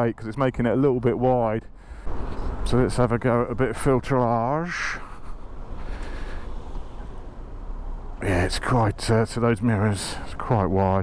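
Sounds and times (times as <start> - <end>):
wind and road noise: 0.0 - 11.0.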